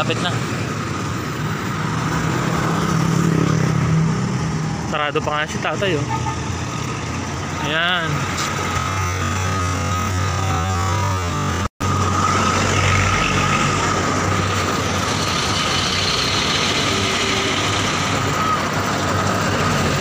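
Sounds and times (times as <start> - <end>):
street noise hum: 0.0 - 20.0
steady high tone: 3.9 - 20.0.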